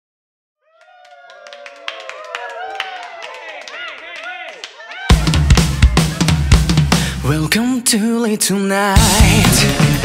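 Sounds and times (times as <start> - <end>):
claps and clicks: 0.8 - 5.4.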